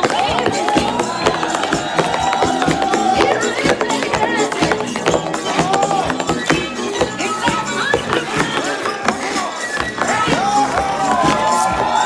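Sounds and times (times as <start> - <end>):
loud dance music: 0.0 - 12.0
tap shoes clicking on stage: 0.0 - 12.0.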